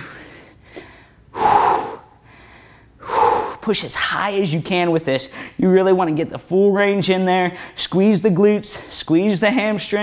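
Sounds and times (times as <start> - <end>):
man exhaling hard: 0.0 - 3.6.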